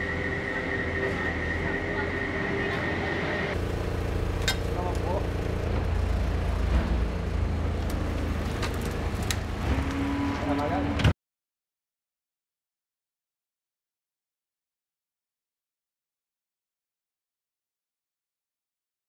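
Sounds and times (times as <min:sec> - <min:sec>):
steady high tone: 0:00.0 - 0:03.9
diesel engine running: 0:00.0 - 0:11.1
low hum: 0:00.0 - 0:11.1.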